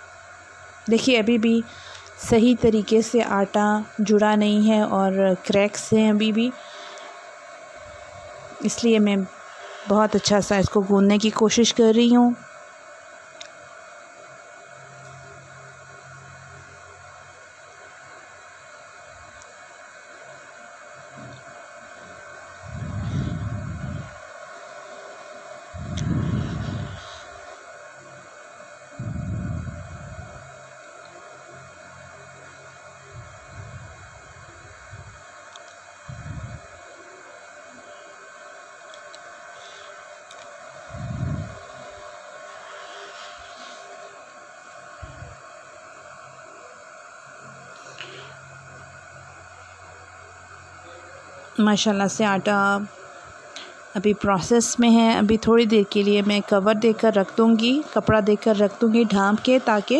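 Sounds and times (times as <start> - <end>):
steady background hum: 0.0 - 59.9.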